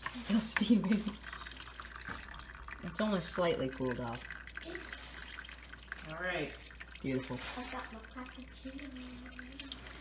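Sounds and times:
liquid trickling into a bucket: 0.0 - 10.0.

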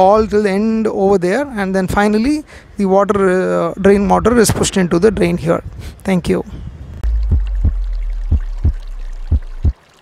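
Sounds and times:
low steady drone: 7.0 - 9.7
deep bass thumps: 7.0 - 9.8.

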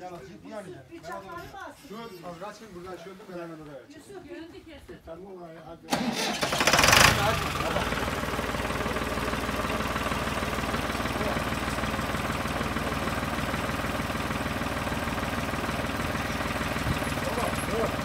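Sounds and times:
tractor diesel engine idling: 5.9 - 18.0.

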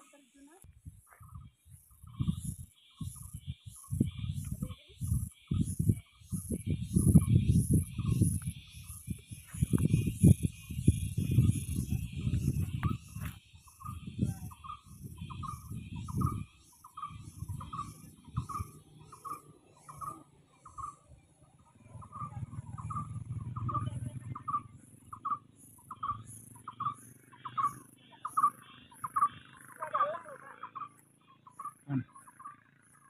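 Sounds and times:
bird calling: 1.2 - 33.0.

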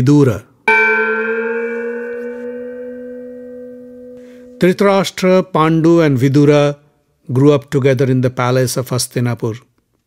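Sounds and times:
struck bell ringing: 0.7 - 5.2.

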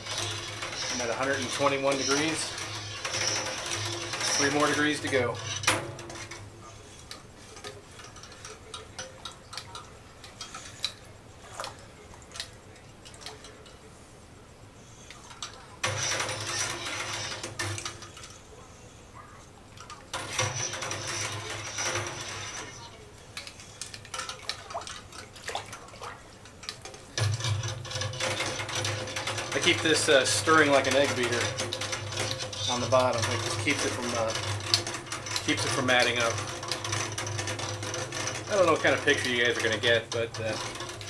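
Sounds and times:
liquid sloshing: 6.1 - 13.9, 23.3 - 41.0.

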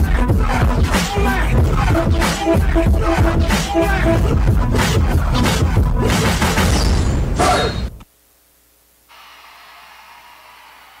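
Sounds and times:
faint steady hiss: 7.9 - 9.1.

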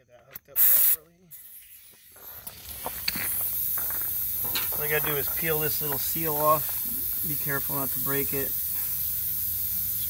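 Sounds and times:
short compressed air hiss: 0.6 - 4.8, 6.4 - 10.0.

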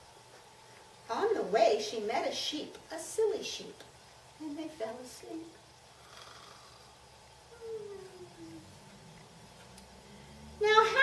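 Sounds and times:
woman humming: 7.5 - 8.8.

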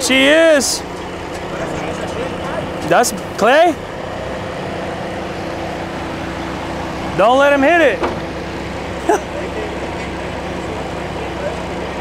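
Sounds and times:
engine humming steadily: 0.0 - 12.0.

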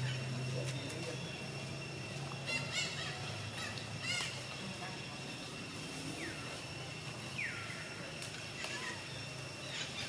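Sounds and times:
steady high whine: 0.0 - 10.0.

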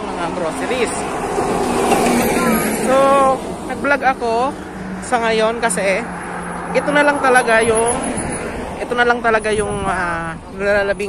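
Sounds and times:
highway traffic rushing: 0.0 - 11.0.

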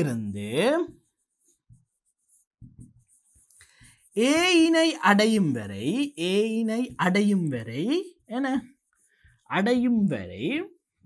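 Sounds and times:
pen writing on surface: 0.6 - 4.8.

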